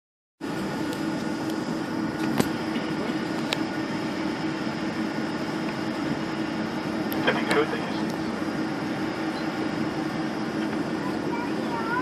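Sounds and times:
aircraft cabin engine hum: 0:00.4 - 0:12.0.

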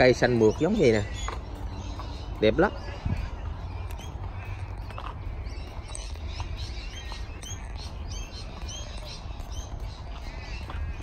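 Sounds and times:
small birds chirping: 0:00.0 - 0:11.0
steady low rumble: 0:01.0 - 0:11.0.

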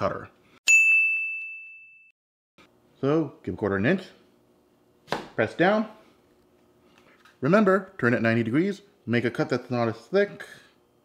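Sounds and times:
bell-like ding: 0:00.7 - 0:02.2.

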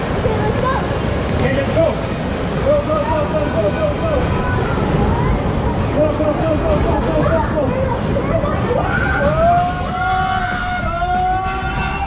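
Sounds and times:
rushing water: 0:00.0 - 0:10.1
raft sliding rumble: 0:00.0 - 0:12.0.

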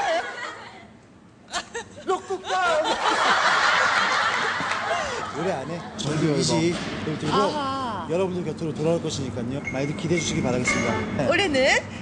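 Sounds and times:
people laughing: 0:00.0 - 0:00.9, 0:01.5 - 0:06.4.

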